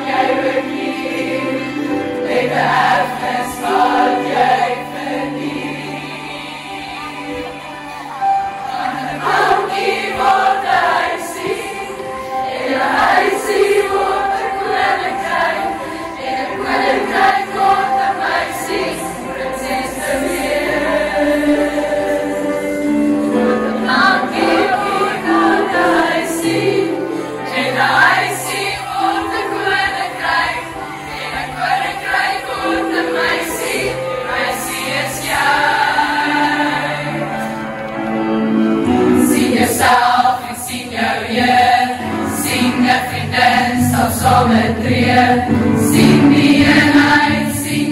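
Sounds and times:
girls choir singing: 0:00.0 - 0:47.9.

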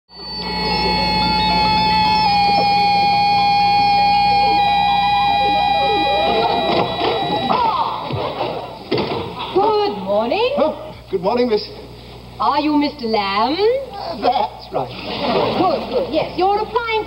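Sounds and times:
electronic synthesizer chord: 0:00.1 - 0:08.1.

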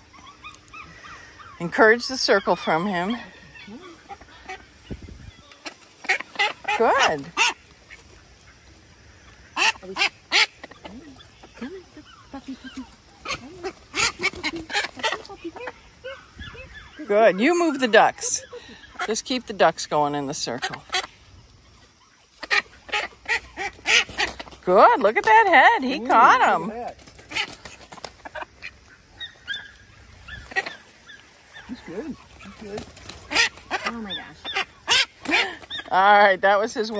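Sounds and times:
ducks quacking: 0:00.0 - 0:36.9.

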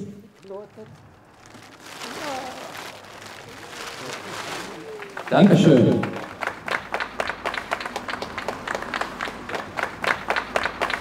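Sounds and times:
plastic tarpaulin rustling: 0:00.0 - 0:06.6
faint voices: 0:00.4 - 0:06.3.

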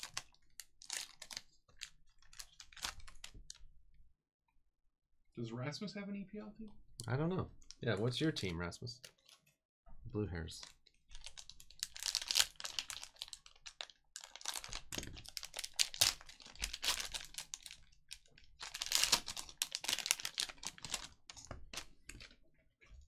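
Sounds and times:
plastic wrapper crinkling: 0:00.0 - 0:03.6, 0:07.6 - 0:09.6, 0:10.5 - 0:22.4.

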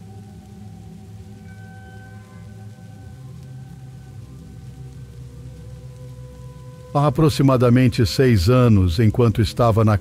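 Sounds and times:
dark ambient music drone: 0:00.0 - 0:10.0
steady rain falling: 0:00.0 - 0:10.0.

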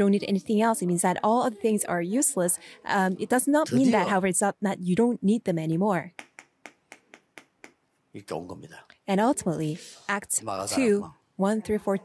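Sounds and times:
chalk tapping on chalkboard: 0:06.1 - 0:07.8.

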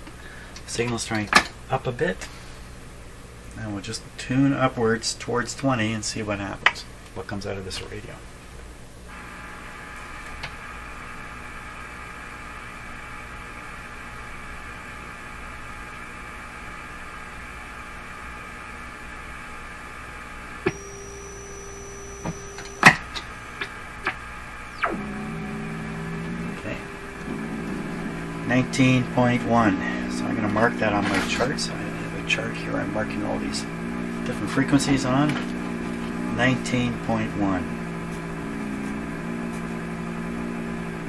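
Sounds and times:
radio receiver buzzing hum: 0:08.9 - 0:41.0
rough buzzy test tone: 0:13.7 - 0:41.0
radio tone with clicks: 0:20.5 - 0:40.1.

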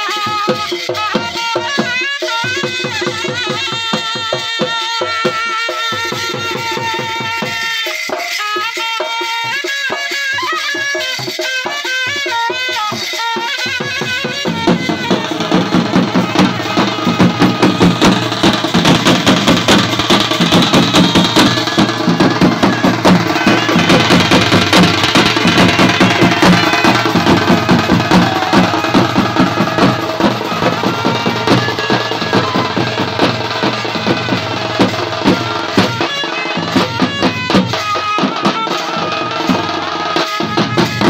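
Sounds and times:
fast steady drumming: 0:00.0 - 0:41.0.

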